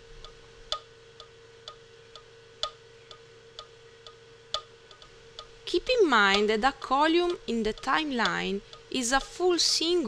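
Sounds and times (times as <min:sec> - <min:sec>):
metronome clicking: 0:00.2 - 0:05.5, 0:06.2 - 0:09.9.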